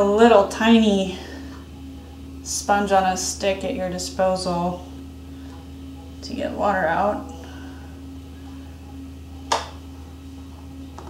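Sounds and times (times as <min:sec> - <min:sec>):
potter's wheel humming: 0:00.0 - 0:11.0.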